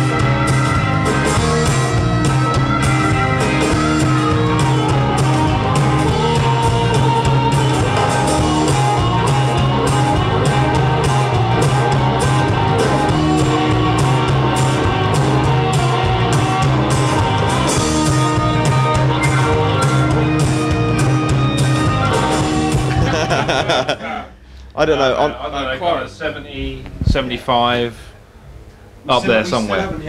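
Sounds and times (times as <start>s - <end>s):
amplified harmonica: 0.0s - 23.0s
blues-rock band playing: 0.0s - 24.0s.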